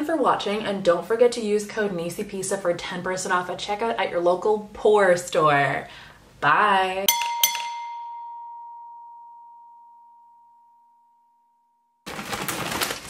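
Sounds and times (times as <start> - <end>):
glass-like chime ringing: 7.1 - 12.0
rustling and knocking: 12.1 - 13.0.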